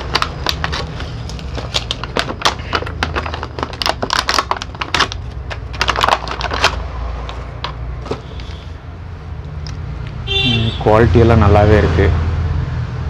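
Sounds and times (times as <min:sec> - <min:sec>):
plastic packaging crinkling: 0:00.0 - 0:08.6.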